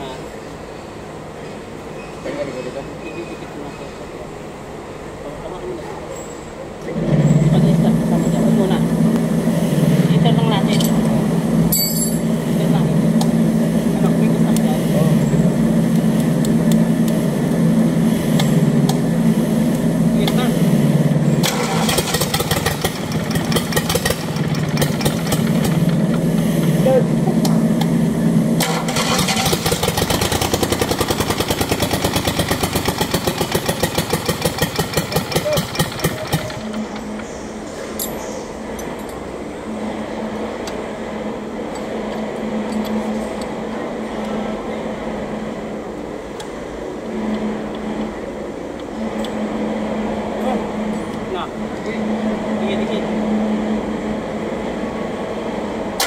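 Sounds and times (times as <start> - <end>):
diesel engine cranking: 6.0 - 56.0
engine running with pulsing beat: 7.0 - 56.0.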